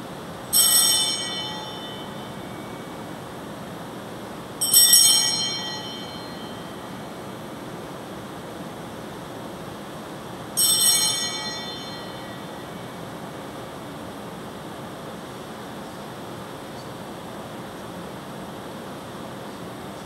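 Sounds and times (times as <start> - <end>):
altar bell ringing: 0.5 - 3.3, 4.6 - 7.4, 10.6 - 13.2.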